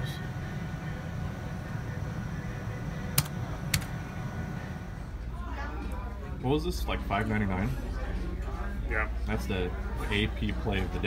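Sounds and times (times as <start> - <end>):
casino room hum: 0.0 - 11.0.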